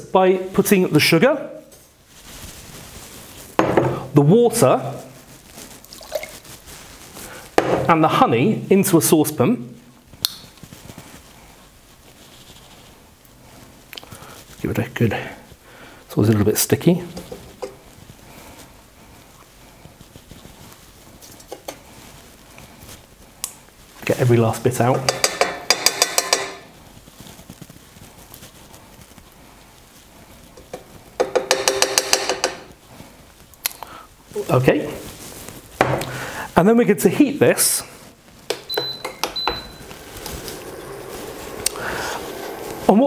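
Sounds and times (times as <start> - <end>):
sugar pouring into saucepan: 5.8 - 7.1, 39.8 - 43.0
spoon scraping honey from jar: 39.8 - 43.0.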